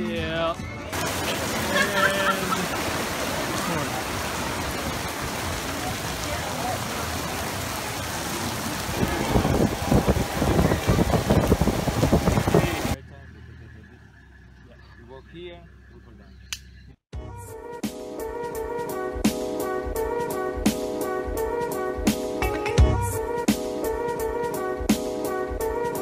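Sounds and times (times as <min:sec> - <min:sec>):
heavy rain on fabric tent: 0:00.0 - 0:13.0.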